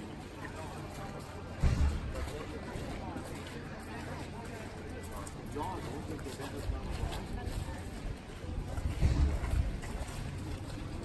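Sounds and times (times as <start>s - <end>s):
wind buffeting microphone: 6.7s - 11.0s.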